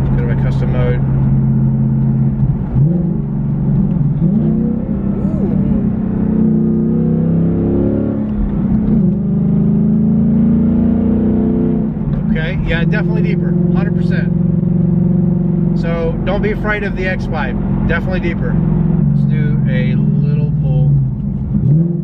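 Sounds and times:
car engine exhaust note: 0:00.0 - 0:22.0.

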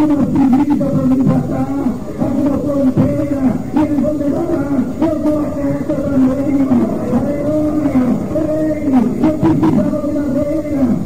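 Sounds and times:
loud distorted voice: 0:00.0 - 0:11.0.

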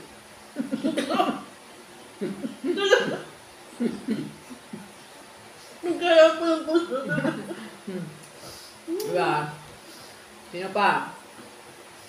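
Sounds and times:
woman laughing: 0:00.6 - 0:01.5, 0:02.2 - 0:04.8, 0:06.4 - 0:08.1.

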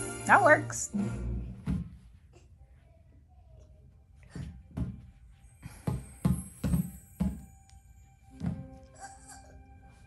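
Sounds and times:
exercise ball thumping on carpet: 0:01.6 - 0:02.0, 0:05.7 - 0:07.5
soft music with held notes: 0:04.8 - 0:10.0.

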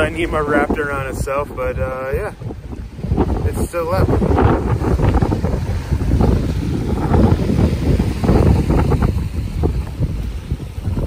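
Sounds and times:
water rushing and waves: 0:00.0 - 0:11.0
wind buffeting microphone: 0:00.0 - 0:11.0.

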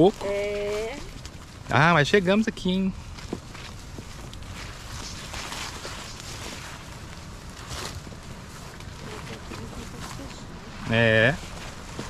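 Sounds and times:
footsteps on wet trail: 0:00.0 - 0:12.0
leaves and branches brushing: 0:00.0 - 0:12.0.

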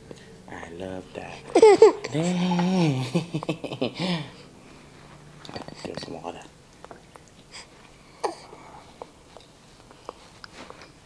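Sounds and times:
baby mouth clicks and smacks: 0:06.7 - 0:07.5
baby vocal burst: 0:07.5 - 0:08.6.

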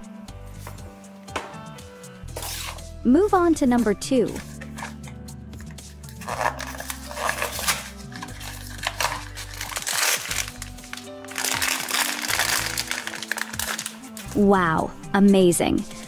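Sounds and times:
background music: 0:00.0 - 0:16.0
foil bag crinkling: 0:06.1 - 0:14.4.

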